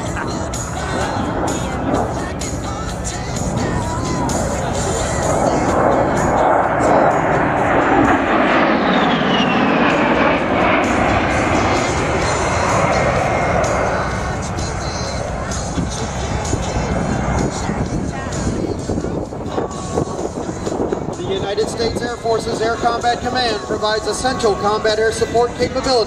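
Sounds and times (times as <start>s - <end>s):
jet engine whine flying by: 0.0s - 26.0s
music: 0.0s - 26.0s.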